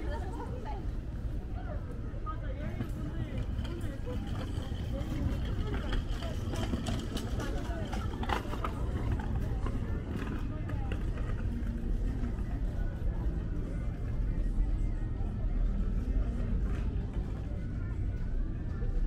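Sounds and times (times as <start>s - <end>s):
low rumble of traffic: 0.0s - 19.0s
passers-by talking: 0.0s - 19.0s.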